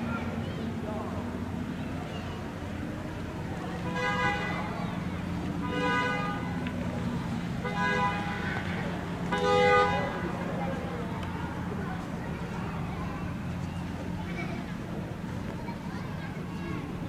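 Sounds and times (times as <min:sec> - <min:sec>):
idling cars hum: 0:00.0 - 0:17.0
car horn honking: 0:05.6 - 0:06.6, 0:07.6 - 0:08.7, 0:09.3 - 0:10.2.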